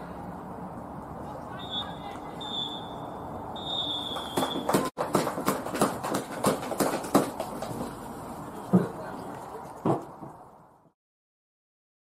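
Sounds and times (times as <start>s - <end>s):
referee's whistle blasts: 1.6s - 4.8s
sharp hand claps: 4.1s - 7.6s.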